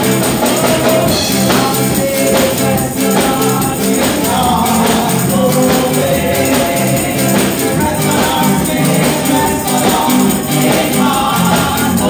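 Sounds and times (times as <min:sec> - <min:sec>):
band playing steady beat: 0:00.0 - 0:12.0
tambourine: 0:00.0 - 0:12.0
women singing: 0:00.0 - 0:12.0.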